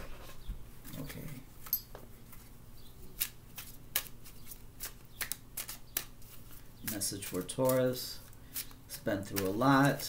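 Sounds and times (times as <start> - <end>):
cards being shuffled: 2.3 - 10.0.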